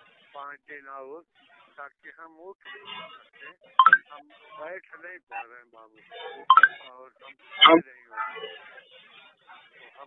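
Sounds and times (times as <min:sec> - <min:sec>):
muffled speech over phone line: 0:00.0 - 0:10.0.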